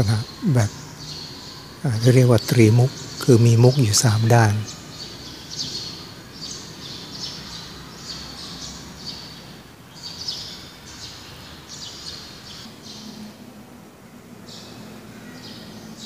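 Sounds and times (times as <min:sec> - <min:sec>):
small birds chirping: 0:00.0 - 0:13.3, 0:14.4 - 0:16.0.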